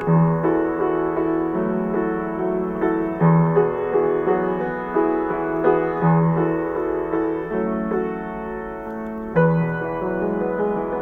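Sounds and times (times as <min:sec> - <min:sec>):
grand piano slow melody: 0:00.0 - 0:11.0.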